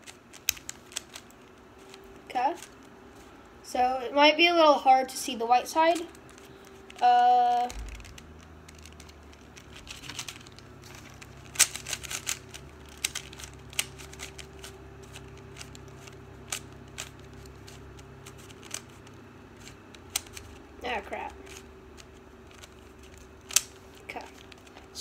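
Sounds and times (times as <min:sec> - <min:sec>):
puzzle cube clicking: 0:00.0 - 0:02.8, 0:05.9 - 0:24.7
steady low hum: 0:00.0 - 0:25.0.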